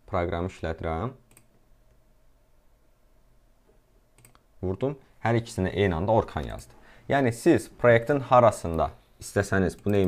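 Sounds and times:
faint steady hum: 0.0 - 10.0
computer mouse click: 1.3 - 2.0, 4.2 - 4.5.

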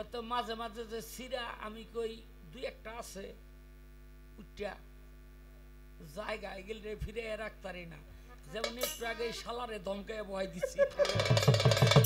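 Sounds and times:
electrical mains hum: 0.0 - 12.0
man speaking: 6.0 - 10.9.

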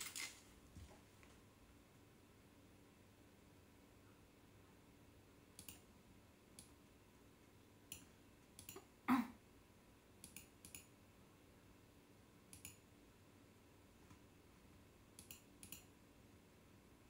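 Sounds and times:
computer mouse clicks: 5.6 - 5.9, 7.9 - 8.9, 10.2 - 10.9, 12.5 - 12.8, 15.2 - 15.9.

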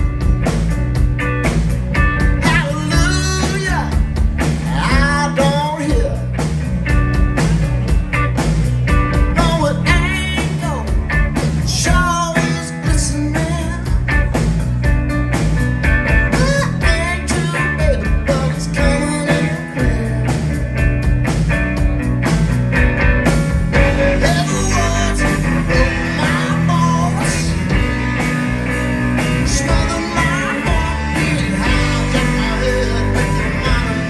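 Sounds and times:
bass guitar: 0.0 - 34.0
drums: 0.0 - 34.0
electric guitar: 0.0 - 34.0
lead vocals: 2.4 - 6.4, 11.6 - 14.0, 16.3 - 20.6, 23.8 - 28.2, 29.2 - 34.0.

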